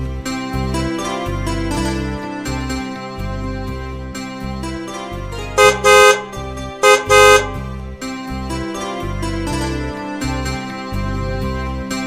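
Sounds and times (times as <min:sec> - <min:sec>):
background music: 0:00.0 - 0:12.0
vehicle horn honking: 0:05.6 - 0:07.6.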